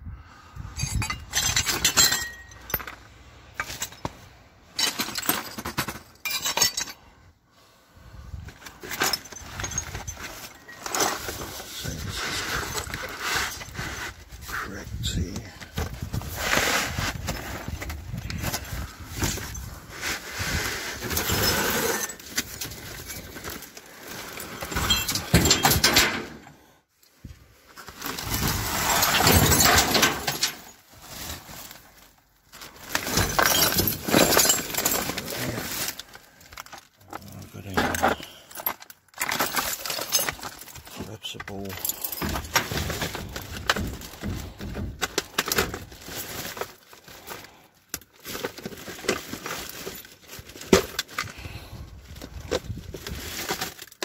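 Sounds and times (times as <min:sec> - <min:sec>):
broken crockery and glass clattering: 0:00.7 - 0:07.1, 0:08.8 - 0:11.5, 0:18.5 - 0:19.7, 0:21.0 - 0:26.5, 0:28.2 - 0:30.8, 0:32.9 - 0:35.9, 0:37.5 - 0:46.9
plastic trash bags rustling: 0:08.4 - 0:25.9, 0:27.5 - 0:54.0.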